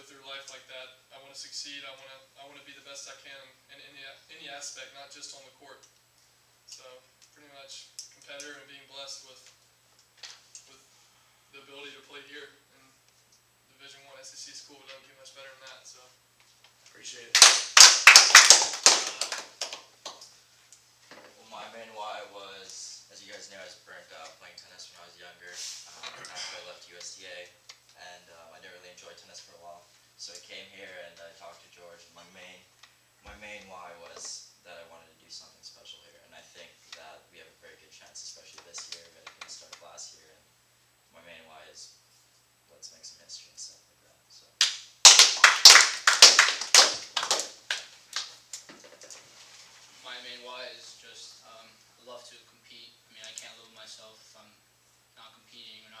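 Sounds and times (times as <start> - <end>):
scattered hand claps: 17.3 - 20.3, 44.6 - 48.7.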